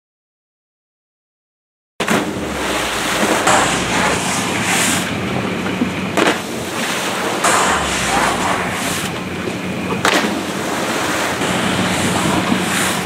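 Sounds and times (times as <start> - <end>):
water splashing and churning: 2.0 - 13.0.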